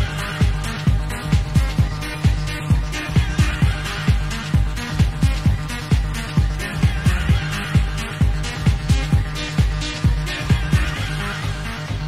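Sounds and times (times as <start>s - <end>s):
electronic dance music: 0.0s - 12.0s
four-on-the-floor kick drum: 0.0s - 12.0s.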